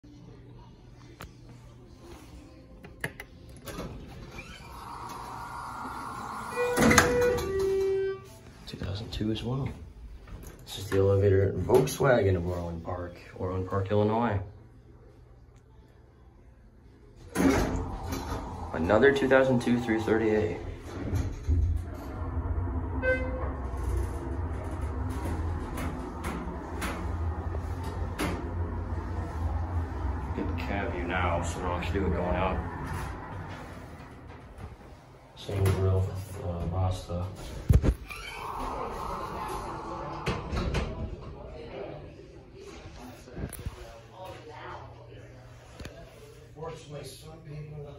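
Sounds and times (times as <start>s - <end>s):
elevator doors sliding open: 3.6s - 8.2s, 17.2s - 36.4s.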